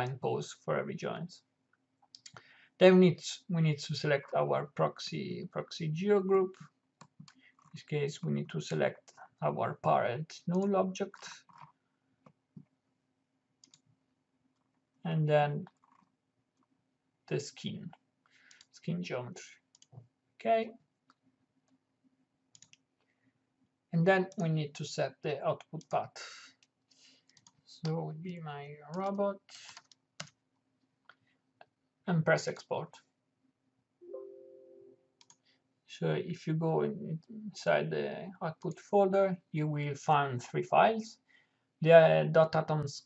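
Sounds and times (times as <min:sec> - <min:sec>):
computer mouse clicks: 0:02.1 - 0:02.4, 0:13.6 - 0:13.9, 0:18.5 - 0:18.7, 0:19.7 - 0:20.0, 0:22.5 - 0:22.9, 0:26.6 - 0:27.6, 0:28.9 - 0:30.4, 0:35.2 - 0:35.4
computer alert tone: 0:34.0 - 0:35.1.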